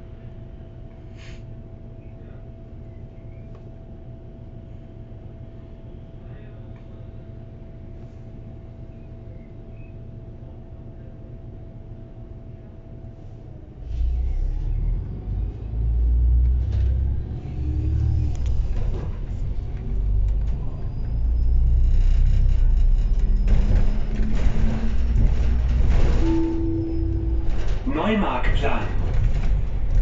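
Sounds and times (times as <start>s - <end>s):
bus diesel engine accelerating: 13.1s - 30.0s
short steady tone: 26.2s - 27.6s.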